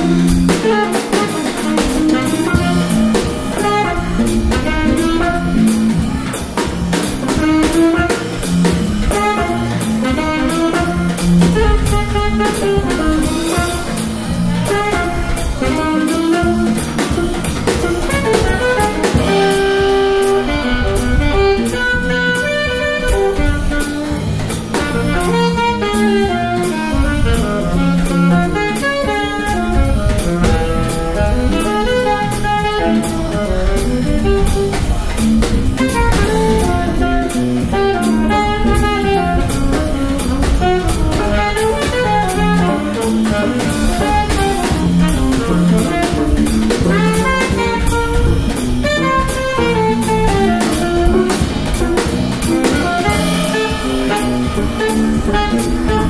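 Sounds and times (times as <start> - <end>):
drum kit cymbal strokes: 0.0 - 56.0
electric bass: 0.0 - 56.0
electric guitar: 0.0 - 56.0
saxophone: 0.0 - 56.0.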